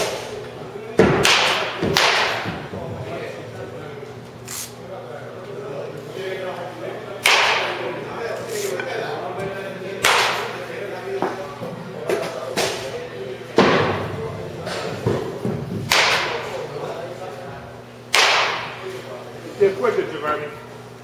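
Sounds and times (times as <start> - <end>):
baseball bat cracking balls: 1.0 - 2.8, 7.2 - 7.8, 10.0 - 10.6, 14.7 - 16.6, 18.1 - 18.8.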